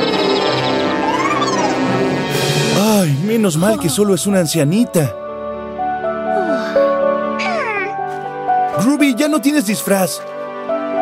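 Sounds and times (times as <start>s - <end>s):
gentle cartoon music: 0.0s - 11.0s.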